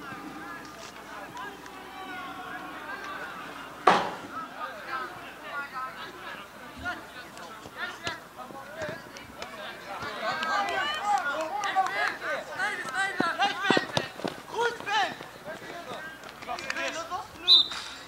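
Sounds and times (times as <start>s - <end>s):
voices shouting and calling: 0.0s - 17.8s
sharp thuds: 3.8s - 4.3s.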